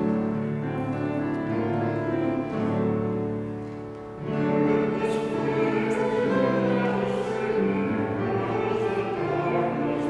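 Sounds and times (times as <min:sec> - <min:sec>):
instrumental accompaniment: 0:00.0 - 0:10.0
voices singing a hymn: 0:04.3 - 0:10.0.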